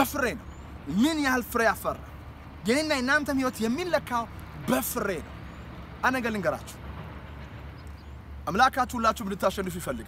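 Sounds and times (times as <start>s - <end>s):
man speaking: 0.0s - 5.3s, 6.0s - 6.8s, 8.5s - 10.0s.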